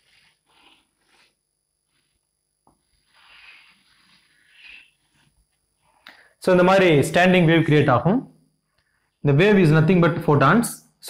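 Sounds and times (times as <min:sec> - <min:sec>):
chalk scraping on blackboard: 0:00.0 - 0:02.2, 0:02.8 - 0:05.3.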